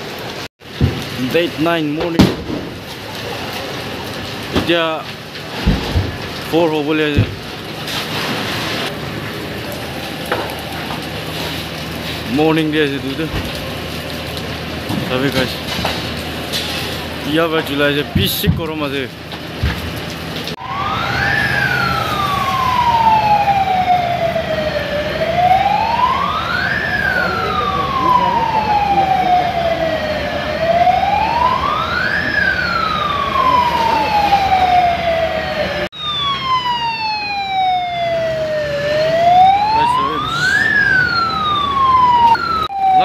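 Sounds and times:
fire engine siren wailing: 0.0s - 43.0s.

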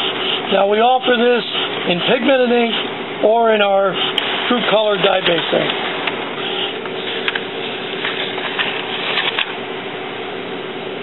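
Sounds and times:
inkjet printer humming and whirring: 0.0s - 10.0s.

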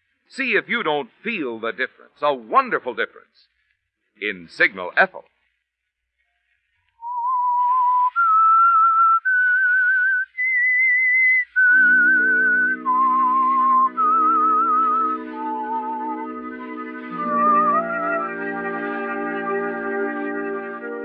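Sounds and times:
whistled melody: 7.0s - 21.0s
orchestral chords: 11.8s - 21.0s.

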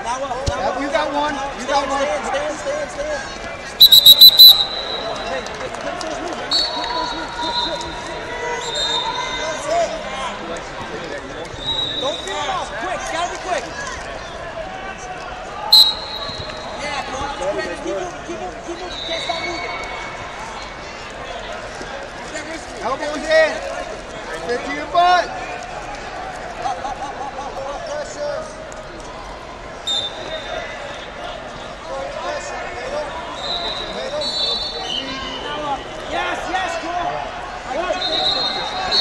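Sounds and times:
spectators chattering: 0.0s - 39.0s
referee's whistle blasts: 3.8s - 5.1s, 15.7s - 16.8s, 29.9s - 31.0s, 33.4s - 35.4s, 37.9s - 39.0s
fainter distant whistles: 3.8s - 5.2s, 15.7s - 16.8s.

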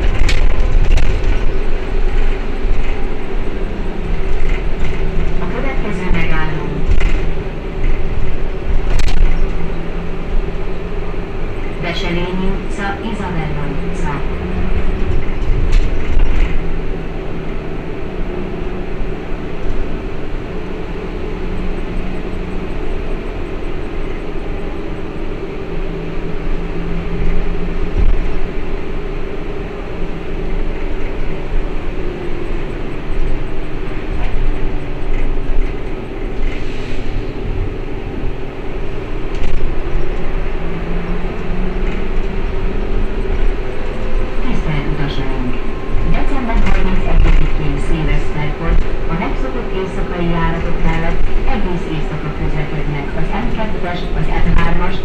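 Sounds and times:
tyre and road rumble: 0.0s - 11.9s.

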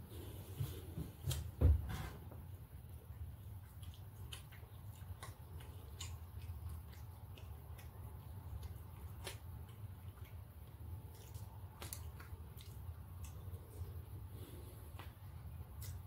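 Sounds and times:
steady low hum: 0.0s - 16.0s
person eating quietly: 2.1s - 16.0s.

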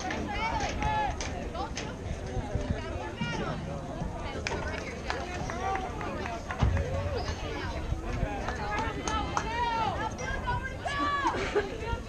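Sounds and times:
players and spectators chattering: 0.0s - 12.0s.

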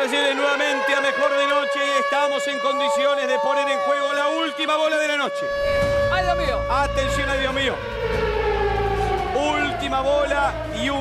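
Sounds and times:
siren-like tone sliding down: 0.0s - 11.0s
voices calling: 0.0s - 11.0s.

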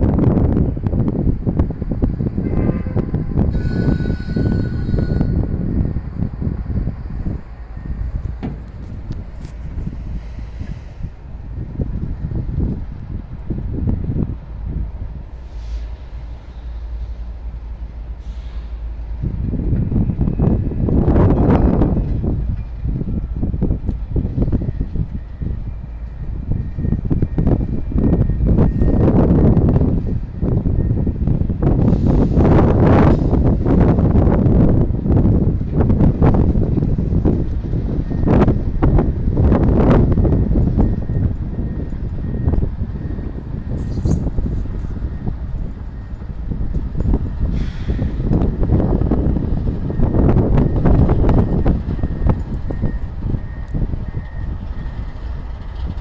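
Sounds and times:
distant freight train: 0.0s - 56.0s
wind buffeting microphone: 0.0s - 56.0s.

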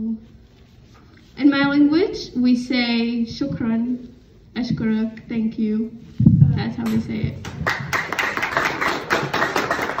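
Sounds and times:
audience applauding: 7.4s - 10.0s.

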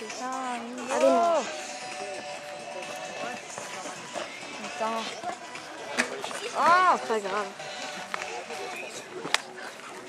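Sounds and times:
spectators' voices: 0.0s - 10.0s.

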